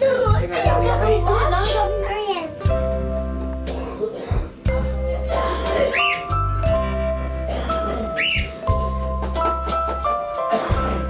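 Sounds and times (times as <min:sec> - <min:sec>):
electronic melody with bass line: 0:00.4 - 0:11.0
rising-and-falling whistle: 0:08.2 - 0:08.5.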